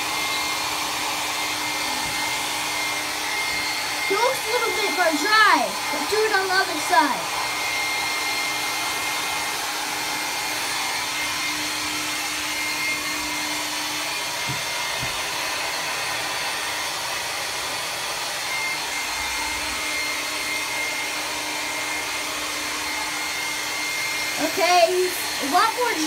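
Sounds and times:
hair dryer running: 0:00.0 - 0:26.0.

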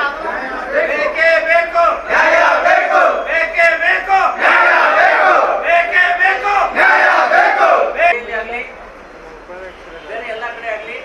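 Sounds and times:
crowd chanting: 0:00.0 - 0:03.3, 0:04.2 - 0:08.1.

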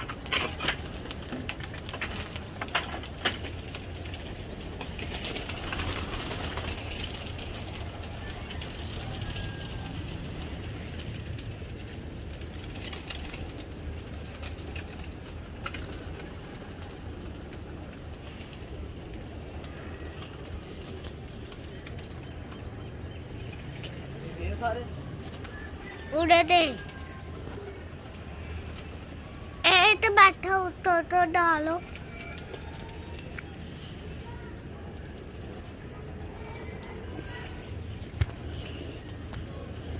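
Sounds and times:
low outdoor background: 0:00.0 - 0:39.9.

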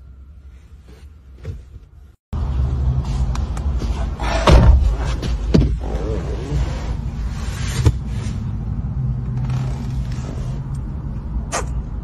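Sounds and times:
low rumble inside car cabin: 0:00.0 - 0:12.0.

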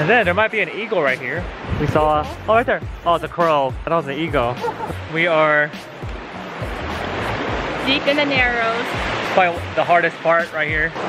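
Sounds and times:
river running over rocks: 0:04.2 - 0:11.0.

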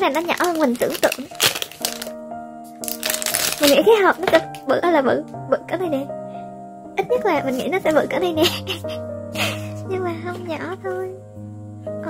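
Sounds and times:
plastic wrapping crinkling: 0:00.0 - 0:04.7
soft piano music: 0:00.0 - 0:12.0.

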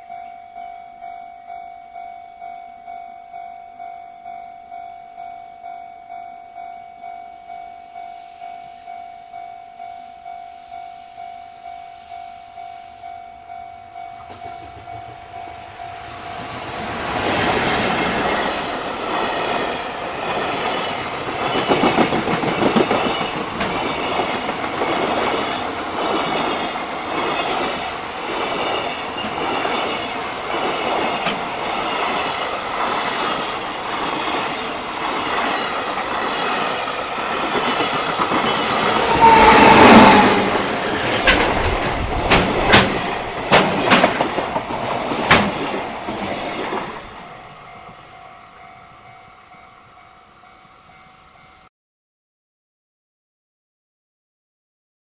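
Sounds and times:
electric locomotive passing: 0:00.0 - 0:51.7
train wheels clattering on rails: 0:14.0 - 0:47.9.

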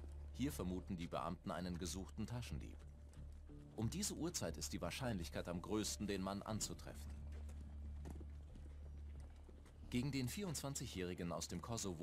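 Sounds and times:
low hum: 0:00.0 - 0:10.9
footsteps on pavement: 0:06.6 - 0:11.0.

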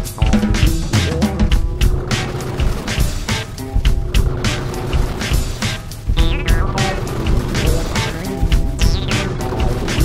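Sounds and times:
music with drum beat: 0:00.0 - 0:10.0.

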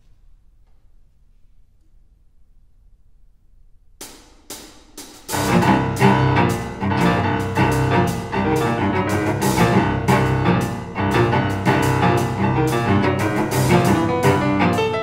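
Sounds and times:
sharp percussive strokes: 0:04.0 - 0:15.0
piano cello and percussion trio: 0:05.3 - 0:15.0.

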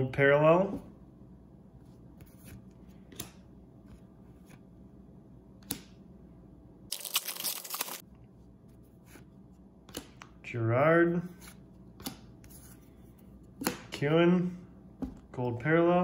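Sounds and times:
cards rustling: 0:06.9 - 0:08.0.

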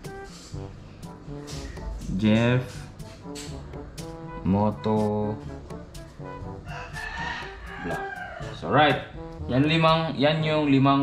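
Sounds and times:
faint background music: 0:00.0 - 0:11.0
rooster crowing: 0:06.6 - 0:09.1.

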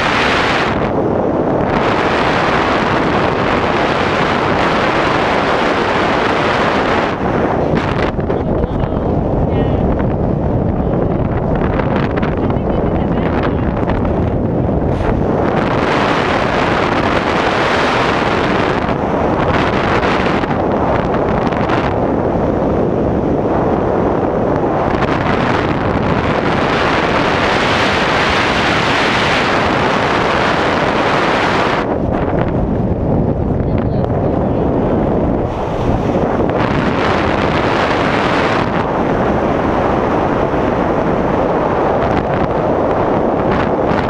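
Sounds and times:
wind rushing over microphone: 0:00.0 - 0:44.0.

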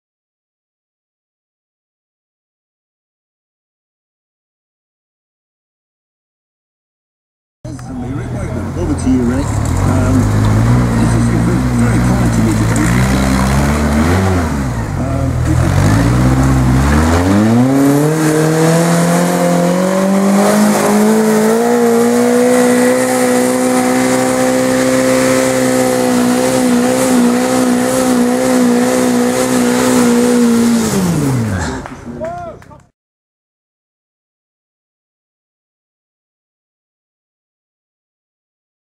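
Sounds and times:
car engine revving uphill: 0:07.7 - 0:32.2.

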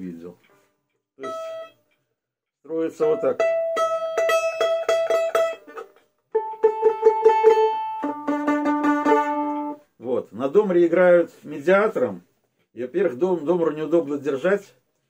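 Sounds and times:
plucked domra strings: 0:01.2 - 0:01.9, 0:02.7 - 0:09.9.

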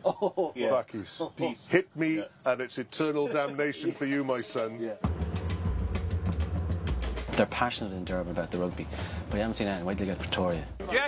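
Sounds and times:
music playing: 0:05.0 - 0:11.0.

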